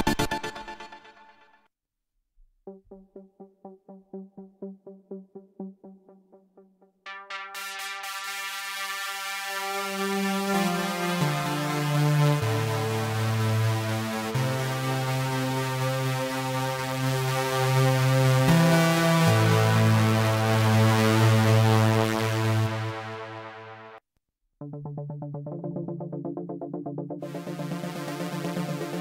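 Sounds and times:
deep synthesizer layer: 2.7s - 24.0s, 24.6s - 29.0s.

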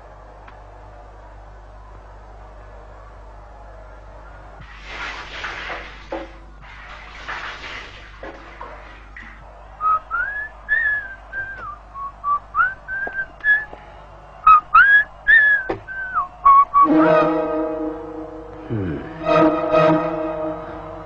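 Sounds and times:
person whistling a tune: 9.8s - 13.7s, 14.5s - 16.9s
background music held chord: 16.8s - 21.0s.

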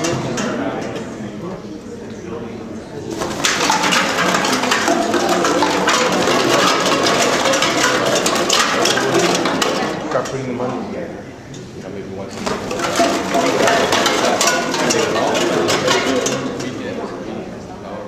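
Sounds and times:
people's voices: 0.0s - 18.0s
plastic and cans rustling and rattling: 3.0s - 10.9s, 12.3s - 17.3s.

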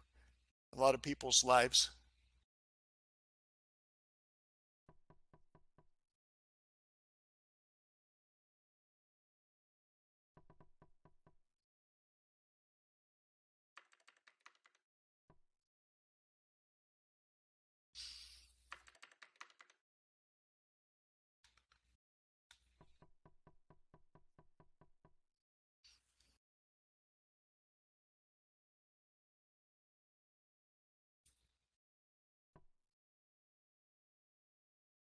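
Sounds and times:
computer keyboard typing: 13.8s - 14.8s, 18.7s - 19.8s.

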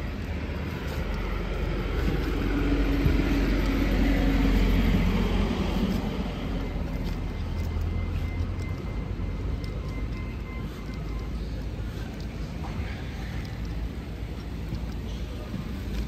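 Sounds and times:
low road rumble: 0.0s - 16.0s
vehicle engine passing: 0.0s - 16.0s.

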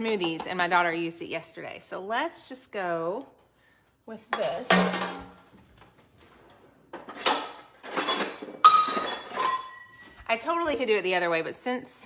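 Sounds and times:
dishes and utensils clattering: 4.3s - 5.5s, 6.9s - 10.2s.

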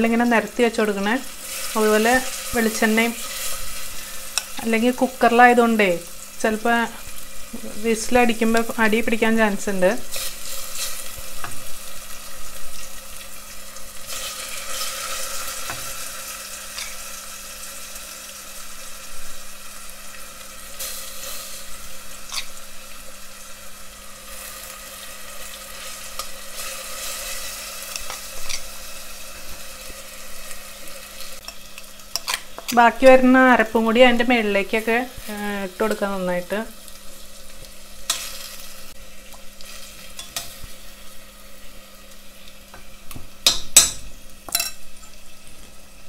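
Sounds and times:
fish sizzling in hot oil: 0.0s - 46.0s.

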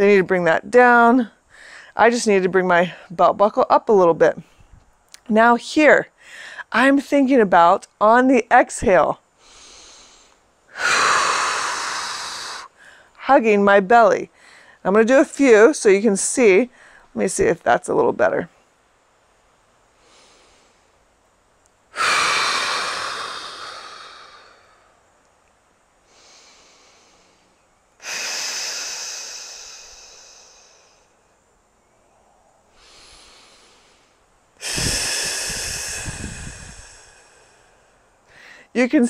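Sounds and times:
woman inhaling quietly: 1.5s - 2.0s, 9.4s - 13.2s, 14.4s - 14.8s, 16.7s - 17.1s, 20.0s - 21.0s, 21.9s - 25.0s, 26.0s - 31.2s, 32.7s - 38.7s
woman exhaling forcefully: 9.4s - 13.0s, 21.9s - 25.0s, 28.0s - 31.1s, 32.8s - 34.0s, 34.6s - 38.7s.

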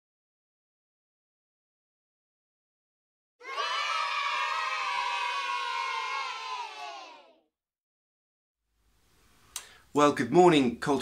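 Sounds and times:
children cheering: 3.4s - 7.4s.

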